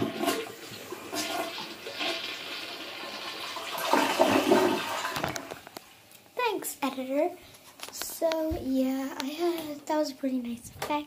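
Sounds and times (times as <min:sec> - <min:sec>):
toilet flushing: 0:00.0 - 0:05.6.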